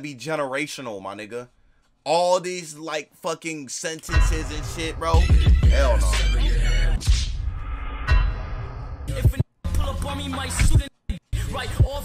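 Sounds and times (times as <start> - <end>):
man rapping over a beat: 3.9 - 7.0, 9.1 - 12.0.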